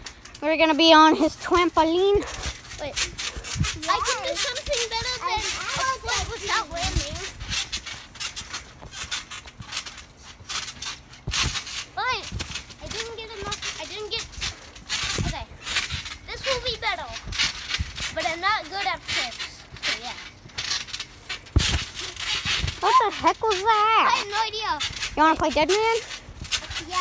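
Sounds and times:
thuds of trampoline landings: 2.0s - 27.0s.

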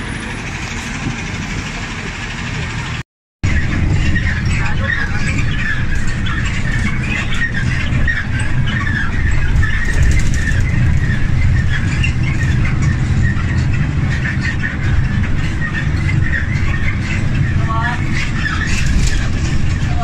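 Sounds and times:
bus engine and road rumble: 0.0s - 20.0s
high squeaks: 3.5s - 20.0s.

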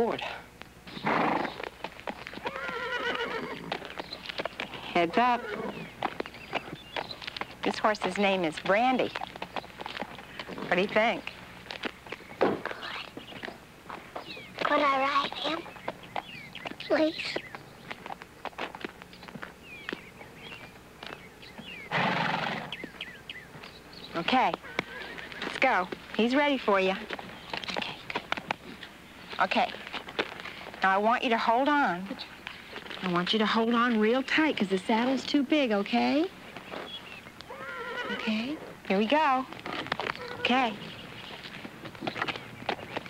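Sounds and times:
hooves shifting on dirt: 0.0s - 43.0s
loud horse sound: 0.9s - 12.7s, 21.6s - 23.2s, 36.6s - 43.0s
hoof clops: 0.9s - 43.0s
horse whinnying: 2.3s - 3.8s, 5.2s - 5.9s, 21.9s - 22.8s, 24.6s - 25.5s, 37.5s - 38.5s.

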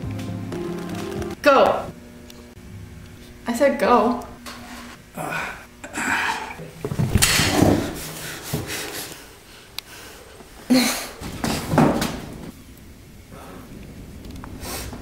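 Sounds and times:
people straining breathy exhalations: 5.1s - 6.6s.

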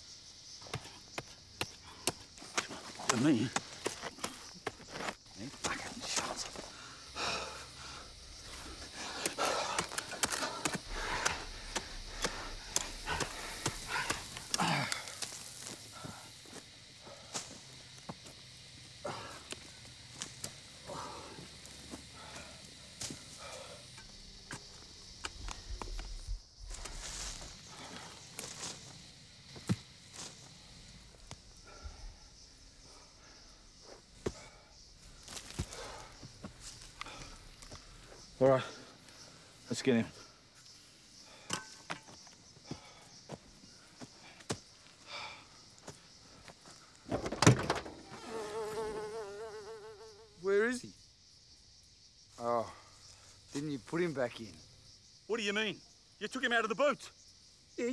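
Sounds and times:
digging in dry soil and leaves: 8.1s - 18.5s, 25.5s - 31.4s, 32.9s - 38.4s
person grunting with effort: 14.5s - 15.1s.

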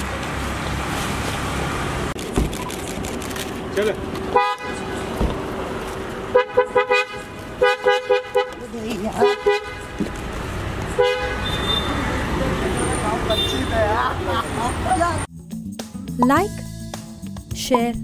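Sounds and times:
street and engine noise: 0.0s - 15.3s
voices calling: 3.7s - 15.3s
car horn beeping: 4.3s - 4.8s, 6.3s - 10.0s, 11.0s - 14.0s.

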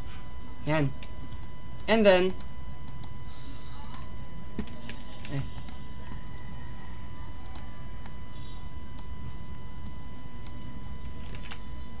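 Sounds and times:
faint steady whine: 0.0s - 12.0s
low electrical hum: 0.0s - 12.0s
computer mouse clicks: 2.3s - 3.1s, 7.4s - 8.2s.

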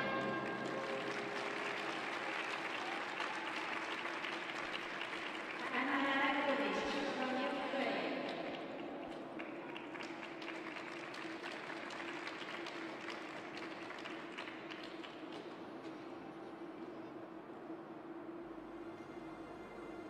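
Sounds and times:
small crowd applauding: 0.0s - 7.2s, 8.0s - 17.2s.

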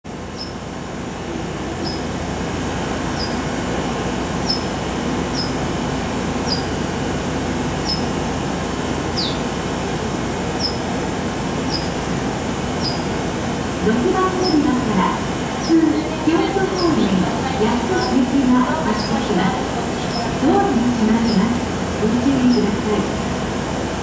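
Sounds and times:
electric train humming: 0.1s - 24.0s.

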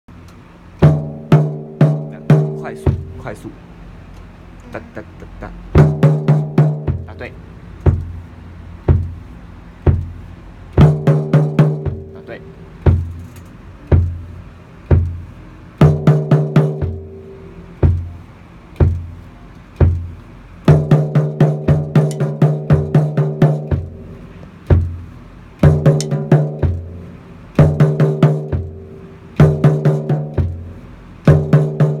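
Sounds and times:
bass drum beats: 0.8s - 3.6s, 5.7s - 8.2s, 8.8s - 13.2s, 13.9s - 14.3s, 14.9s - 17.2s, 17.8s - 18.2s, 18.8s - 19.2s, 19.8s - 27.0s, 27.6s - 32.0s
snare and tom fills: 25.6s - 26.9s.

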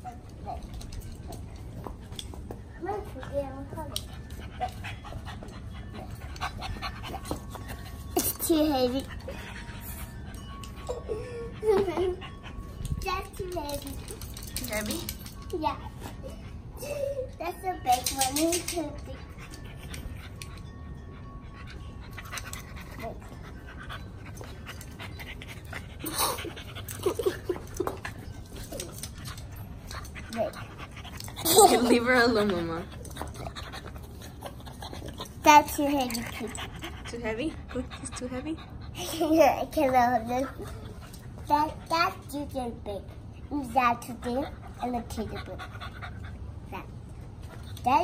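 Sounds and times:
puppy panting: 0.0s - 48.0s.

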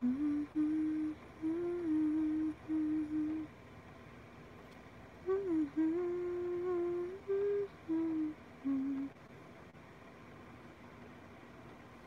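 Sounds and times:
woman humming: 0.0s - 3.5s, 5.2s - 9.2s.

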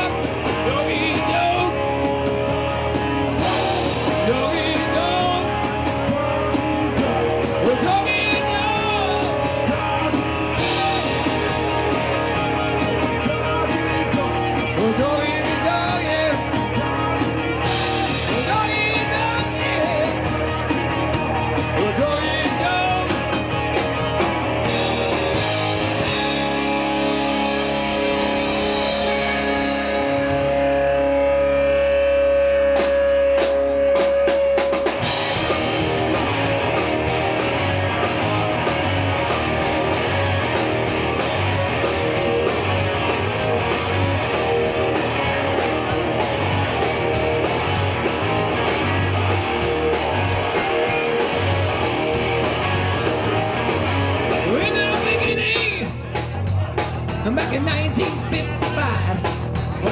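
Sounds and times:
rock band playing: 0.0s - 59.9s.

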